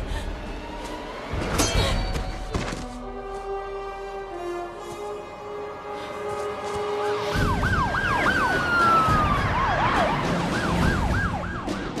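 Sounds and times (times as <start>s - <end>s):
police sirens yelping and wailing: 6.9s - 12.0s.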